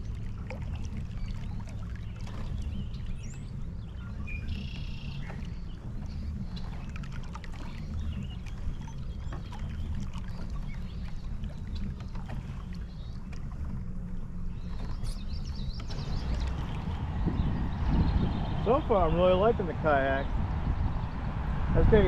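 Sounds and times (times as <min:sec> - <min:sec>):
kayak low rumble: 0:00.0 - 0:22.0
light water splashes: 0:00.0 - 0:22.0.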